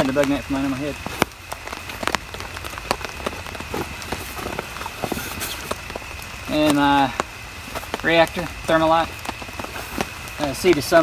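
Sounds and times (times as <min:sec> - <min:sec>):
rain falling: 0:00.0 - 0:11.0
raindrops ticking on surfaces: 0:00.0 - 0:11.0.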